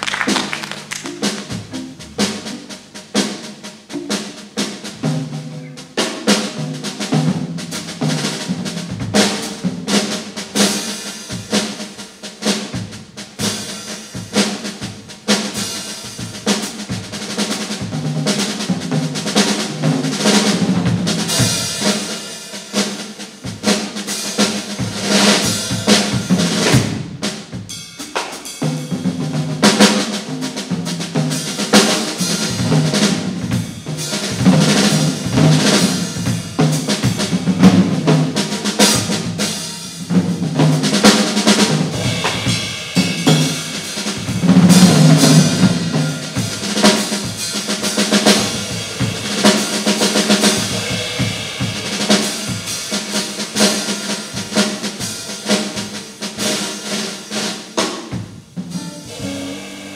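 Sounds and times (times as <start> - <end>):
jazz trio playing: 0.0 - 59.9
snare and cymbals: 0.0 - 59.9.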